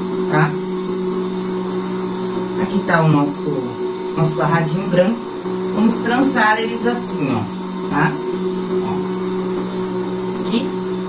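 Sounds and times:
steady low hum: 0:00.0 - 0:11.0
short spoken syllable: 0:08.8 - 0:09.0.

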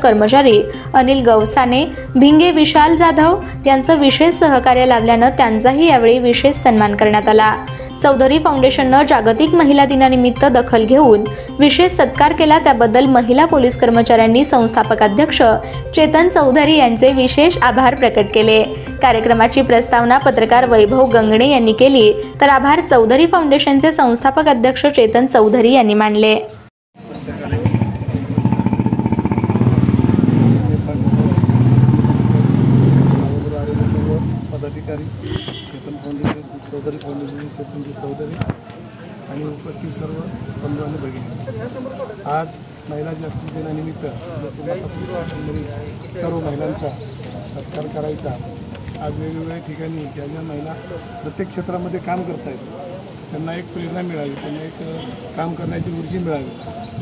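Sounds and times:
people talking: 0:00.0 - 0:28.2, 0:30.4 - 0:31.6, 0:33.2 - 0:38.6, 0:39.3 - 0:48.4, 0:53.4 - 0:56.6
bird chirping: 0:27.0 - 0:27.6, 0:33.1 - 0:38.6, 0:43.6 - 0:51.6, 0:53.1 - 0:57.0
vehicle engine running: 0:27.3 - 0:35.5.

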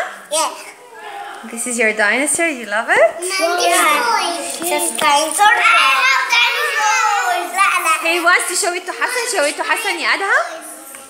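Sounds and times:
young children talking: 0:00.3 - 0:01.6, 0:03.2 - 0:11.0
drawn-out child vocal sound: 0:03.2 - 0:08.0.

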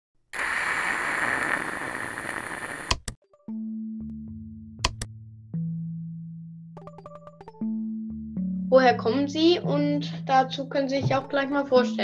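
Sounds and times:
electronic static hiss: 0:00.4 - 0:03.1
sharp click: 0:04.8 - 0:05.1.

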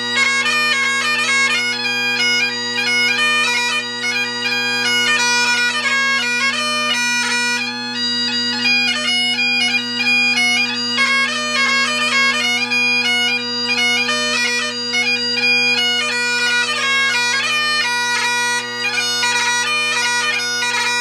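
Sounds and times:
bagpipe playing: 0:00.0 - 0:21.0.

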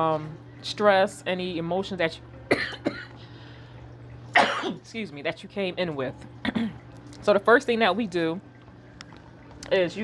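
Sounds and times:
woman coughing: 0:02.5 - 0:03.2, 0:04.3 - 0:04.8, 0:06.4 - 0:06.8.

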